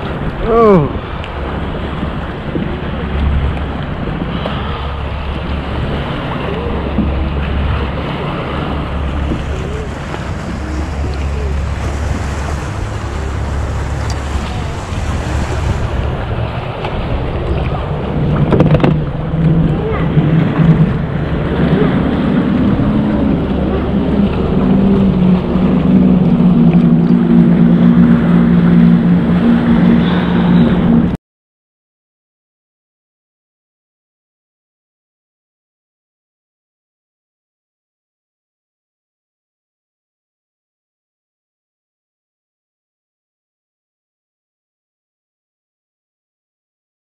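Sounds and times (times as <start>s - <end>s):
boat motor running: 0.0s - 31.2s
wind buffeting microphone: 0.0s - 31.2s.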